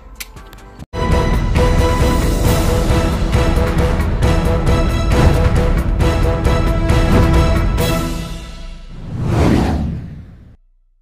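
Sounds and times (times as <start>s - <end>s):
logo whoosh: 7.0s - 8.0s, 8.9s - 10.6s.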